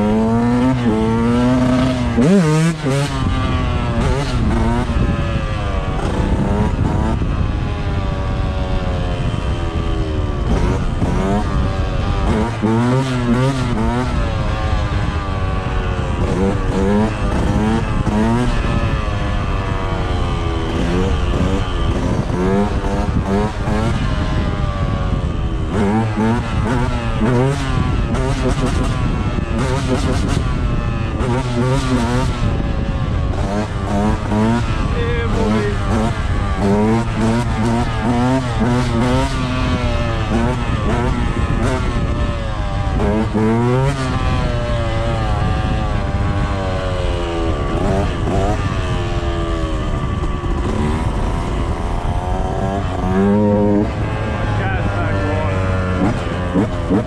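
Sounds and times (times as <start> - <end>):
dirt bike engine revving: 0.0 - 57.0
wind rushing over microphone: 0.0 - 57.0.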